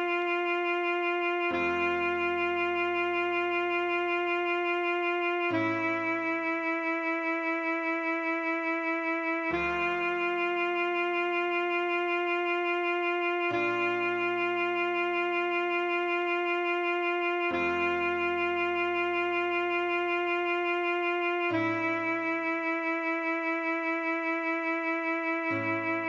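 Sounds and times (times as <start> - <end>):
alto saxophone melody: 0.0 - 26.0
backing track chords: 0.0 - 26.0.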